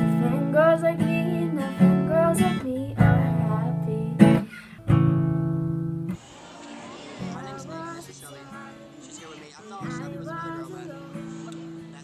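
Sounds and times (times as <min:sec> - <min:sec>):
strummed acoustic guitar chords: 0:00.0 - 0:06.2, 0:07.2 - 0:12.0.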